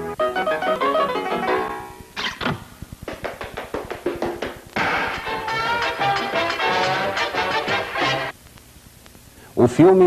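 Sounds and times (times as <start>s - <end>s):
rapid sharp ringing taps: 3.1s - 4.7s
loud music: 3.1s - 8.3s.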